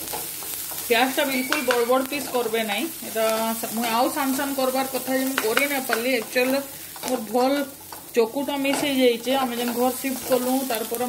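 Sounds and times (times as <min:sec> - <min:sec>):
onions sizzling in frying pan: 0:00.0 - 0:11.0.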